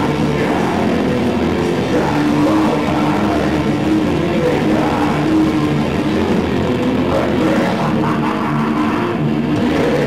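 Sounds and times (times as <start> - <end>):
bass guitar: 0.0 - 10.0
distorted electric guitars: 0.0 - 10.0
drums: 0.0 - 10.0.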